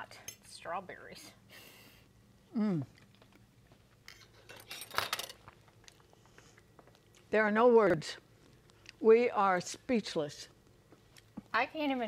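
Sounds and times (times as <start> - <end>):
forks clinking on plates: 4.2 - 5.4.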